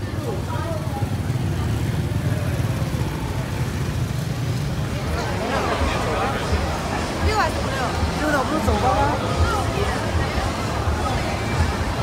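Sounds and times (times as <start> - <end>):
faint street voices: 0.0 - 12.0.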